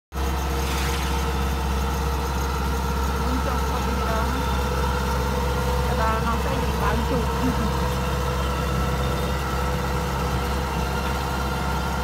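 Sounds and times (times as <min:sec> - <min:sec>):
diesel engine droning: 0:00.1 - 0:12.0.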